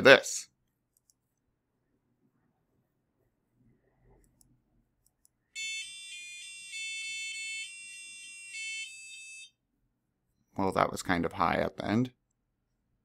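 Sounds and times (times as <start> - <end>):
high electronic buzzer beeping tune: 5.6 - 9.5.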